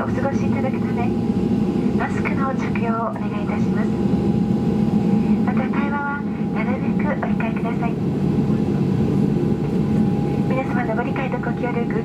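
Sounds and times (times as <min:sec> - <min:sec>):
announcement over cabin speaker: 0:00.0 - 0:01.2, 0:01.8 - 0:04.1, 0:05.2 - 0:12.0
low engine and cabin rumble: 0:00.0 - 0:12.0.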